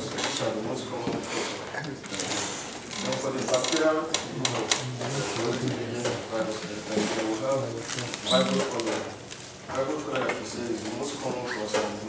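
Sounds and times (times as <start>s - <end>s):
man lecturing: 3.0s - 12.0s.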